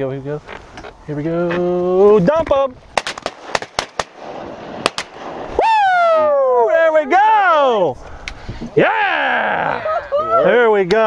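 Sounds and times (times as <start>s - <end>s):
sharp crack: 2.4s - 6.6s
men shouting and whooping: 5.5s - 8.0s, 8.7s - 10.9s.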